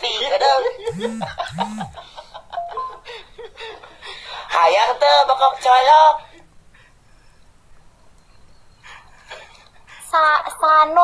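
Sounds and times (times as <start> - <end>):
laughter: 0.0 - 4.3, 8.8 - 10.0
high beeps: 0.9 - 2.0.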